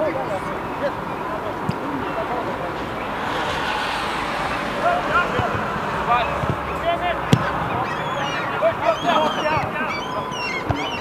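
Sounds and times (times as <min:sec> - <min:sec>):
steady background rush: 0:00.0 - 0:08.8
players shouting: 0:01.9 - 0:11.0.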